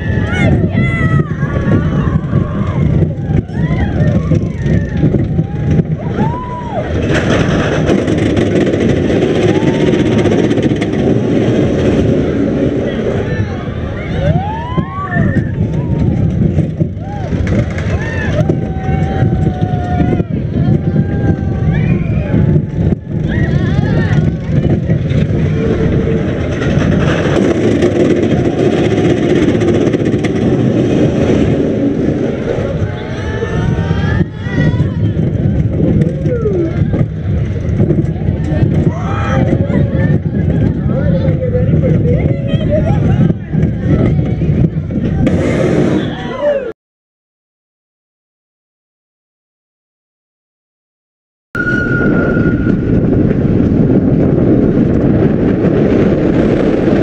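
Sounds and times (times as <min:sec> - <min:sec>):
roller coaster rumble and rattling: 0:00.0 - 0:46.7, 0:51.6 - 0:57.0
riders' voices: 0:32.5 - 0:45.3.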